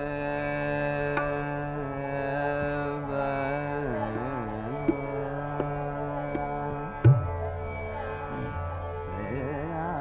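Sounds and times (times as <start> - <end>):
man singing a long note: 9.2 - 10.0.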